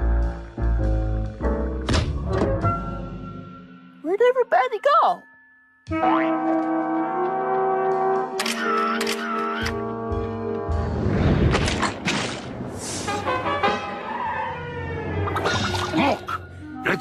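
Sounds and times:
cartoon soundtrack music: 0.1 - 11.7, 12.8 - 17.0.

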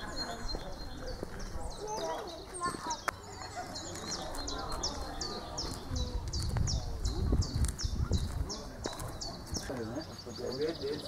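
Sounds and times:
people talking: 0.0 - 11.0
small birds chirping: 0.0 - 11.0.

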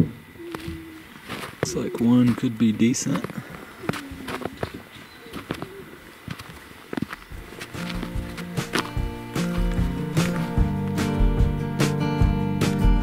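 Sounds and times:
footsteps crunching in snow: 0.4 - 11.7
acoustic guitar music: 7.3 - 13.0.

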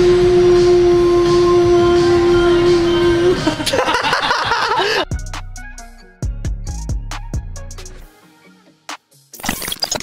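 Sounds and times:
man singing long note: 0.0 - 3.8.

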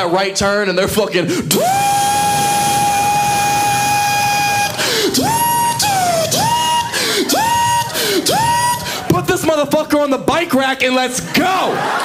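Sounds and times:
man vocally imitating mechanical whine: 1.5 - 9.0.

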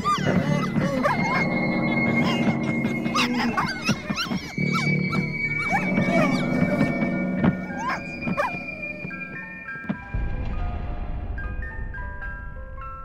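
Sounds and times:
animal yelps and whines: 0.0 - 9.6
film score of held tones: 0.0 - 13.0.

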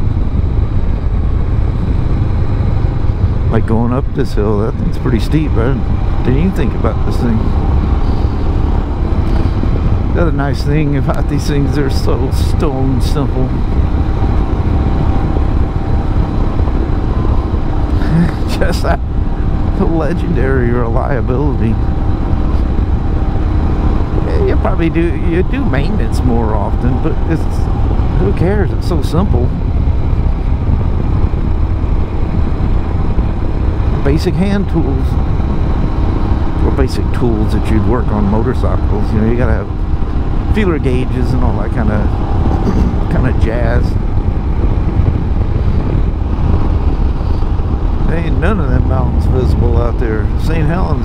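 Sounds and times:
motorcycle engine running: 0.0 - 51.0
wind noise on microphone: 0.0 - 51.0.

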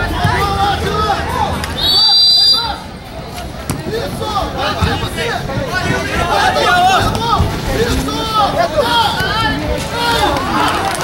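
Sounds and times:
crowd noise: 0.0 - 11.0
voices: 0.0 - 11.0
referee's whistle blast: 1.8 - 2.8.

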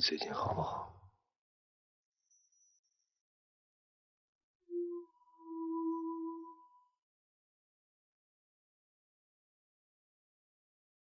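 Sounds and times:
low electronic tone: 4.7 - 6.8.

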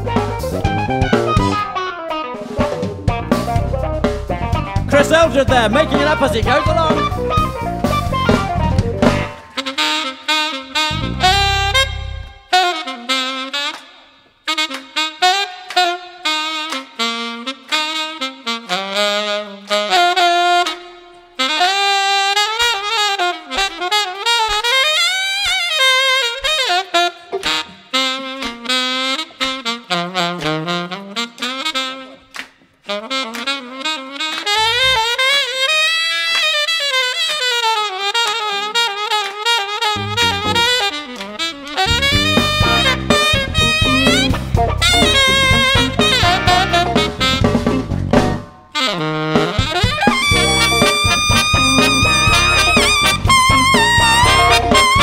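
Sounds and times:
band low notes: 0.0 - 1.7, 2.6 - 9.4, 10.9 - 12.4, 34.6 - 35.1, 40.0 - 40.9, 41.8 - 48.5, 49.6 - 55.0
saxophone solo: 0.0 - 55.0.

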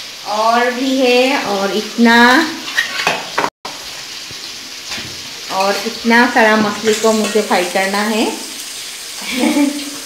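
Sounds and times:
fish sizzling in hot oil: 0.0 - 10.0.

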